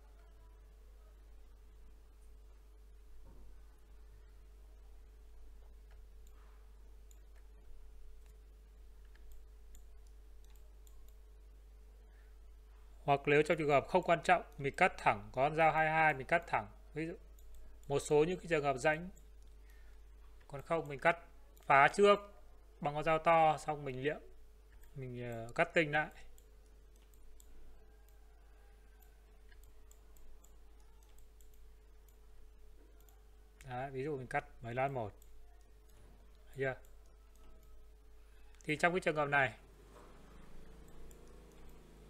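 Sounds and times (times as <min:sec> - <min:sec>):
faint electrical hum: 0:00.0 - 0:42.0
computer mouse clicks: 0:05.6 - 0:11.2, 0:17.3 - 0:18.1, 0:19.1 - 0:22.0, 0:24.7 - 0:33.7, 0:34.8 - 0:38.9, 0:40.0 - 0:42.0.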